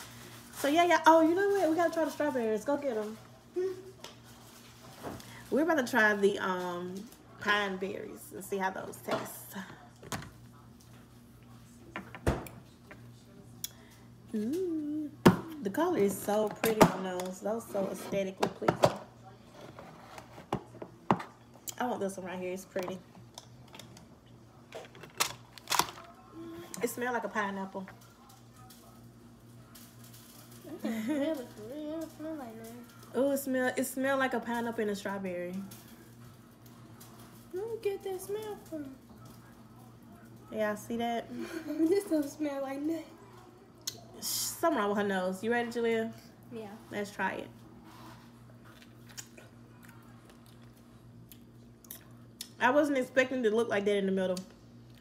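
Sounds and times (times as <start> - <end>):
soft mouth clicks chewing: 48.7 - 52.6.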